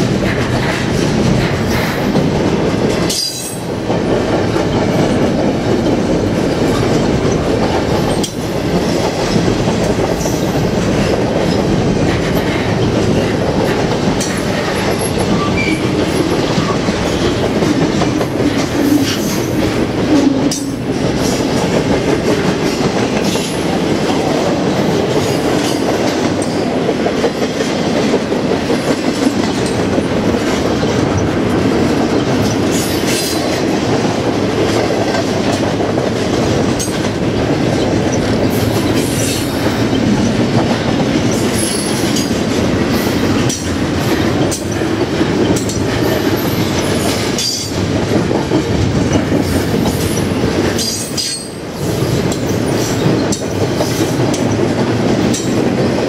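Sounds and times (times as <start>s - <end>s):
freight train wheels rumbling: 0.0s - 56.0s
train clattering over track: 0.0s - 56.0s.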